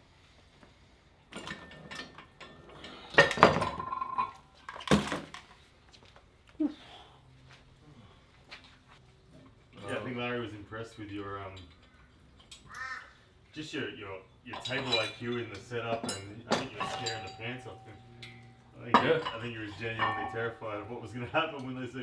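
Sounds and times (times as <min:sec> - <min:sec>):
men talking off-mic: 0:13.5 - 0:22.0
sharp metallic clinks: 0:14.5 - 0:22.0.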